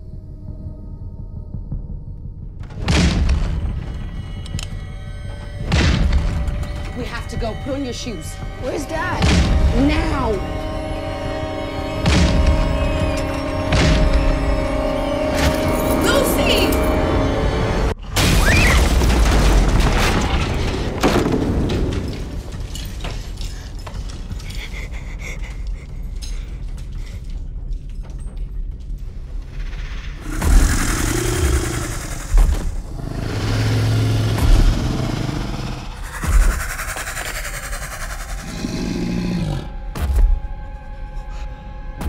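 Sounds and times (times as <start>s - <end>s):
tense music score: 0.0s - 42.0s
heavy booming hits: 2.6s - 4.2s
loud crash and rumble: 18.0s - 22.7s.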